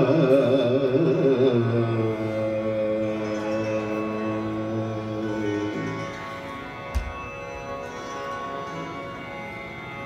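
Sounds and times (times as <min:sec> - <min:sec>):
harmonium: 0:00.0 - 0:10.0.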